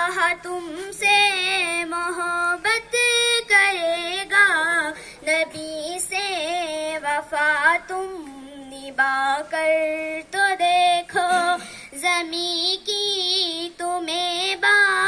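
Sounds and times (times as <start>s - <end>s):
child singing a hymn: 0.0s - 15.0s
child breathing: 4.9s - 5.3s, 11.6s - 12.0s.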